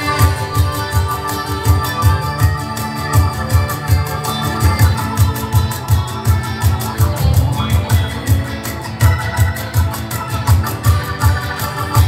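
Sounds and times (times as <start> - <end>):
acoustic guitar: 0.0 - 12.0
cajon steady beat: 0.0 - 12.0
electric guitar: 0.0 - 12.0
keyboard: 0.0 - 12.0.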